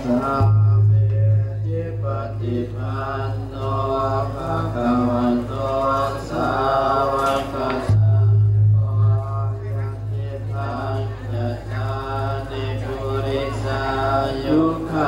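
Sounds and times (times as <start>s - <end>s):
chanting with music over loudspeaker: 0.0s - 15.0s.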